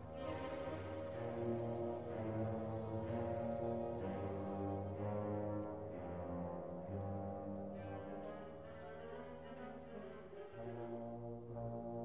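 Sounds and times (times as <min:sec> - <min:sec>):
brass: 0:00.0 - 0:12.0
symphony orchestra low chords: 0:00.0 - 0:12.0.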